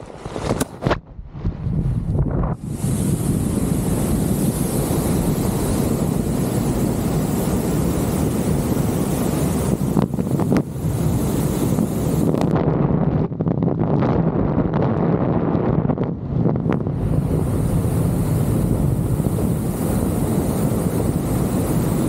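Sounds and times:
wind rushing over microphone: 0:00.0 - 0:22.0.

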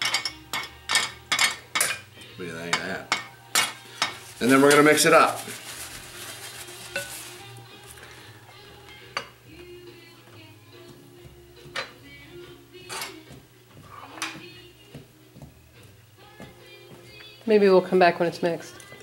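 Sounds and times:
wooden spoon stirring dough: 0:13.1 - 0:15.6.

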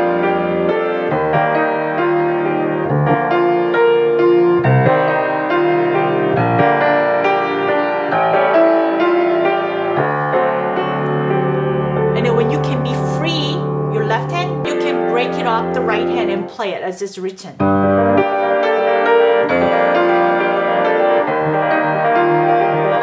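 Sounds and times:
piano playing broken chords: 0:00.0 - 0:16.8, 0:17.5 - 0:23.0.

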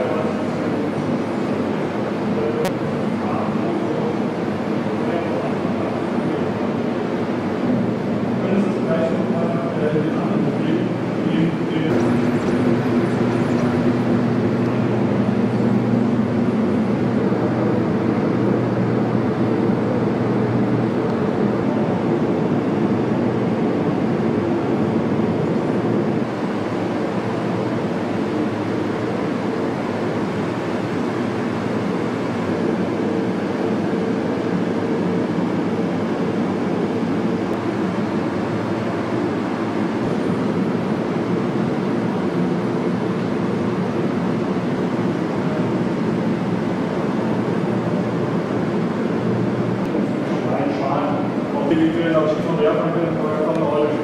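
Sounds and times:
loud drone with low tones: 0:00.0 - 0:54.0.

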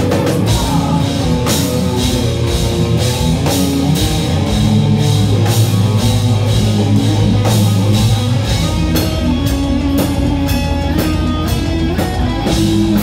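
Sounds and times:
heavy metal band playing live: 0:00.0 - 0:13.0.

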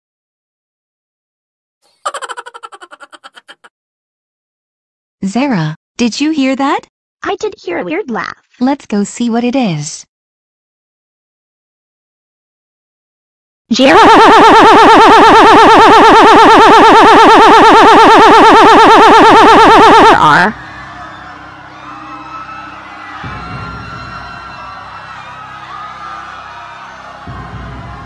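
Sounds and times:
cartoon monster laughing: 0:01.9 - 0:03.7
background music: 0:20.2 - 0:28.0.

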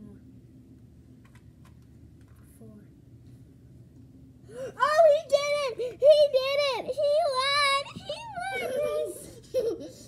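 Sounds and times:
child squealing: 0:07.4 - 0:09.4.

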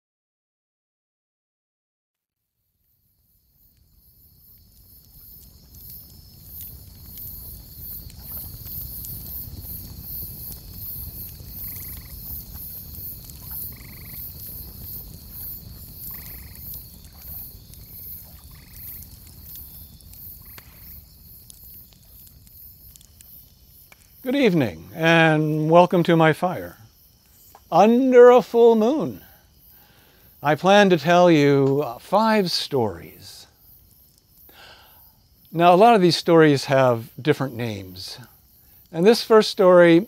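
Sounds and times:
insects chirring: 0:02.4 - 0:40.0
frogs croaking: 0:02.9 - 0:40.0.

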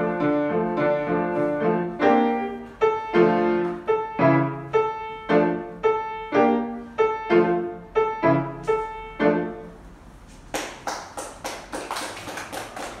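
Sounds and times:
grand piano chords: 0:00.0 - 0:10.2
hand clapping: 0:10.5 - 0:13.0.

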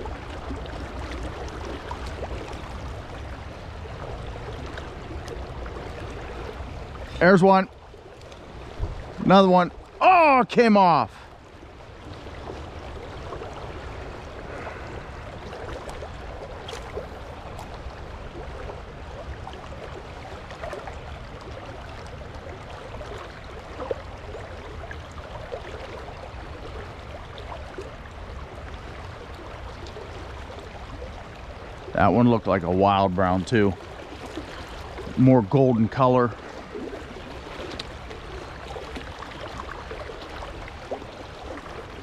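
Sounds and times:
stream water flowing: 0:00.0 - 0:42.0.

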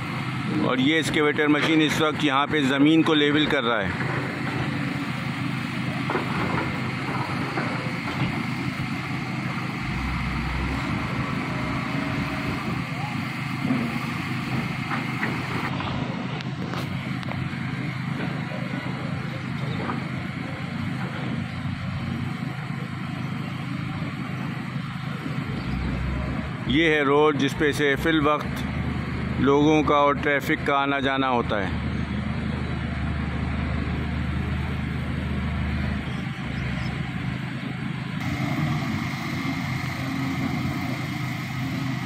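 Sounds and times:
engine running with whine: 0:00.0 - 0:42.0.

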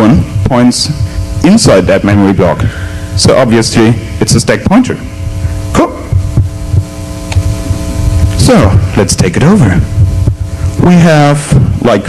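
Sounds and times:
man speaking: 0:00.0 - 0:06.2, 0:08.4 - 0:10.0, 0:10.8 - 0:12.0
electrical mains hum: 0:00.0 - 0:12.0
low uneven throbbing: 0:00.0 - 0:12.0.

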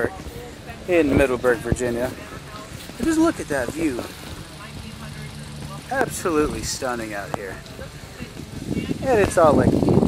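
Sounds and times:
distant vehicle engine hum: 0:00.0 - 0:09.5
faint outdoor background noise: 0:00.0 - 0:10.0.

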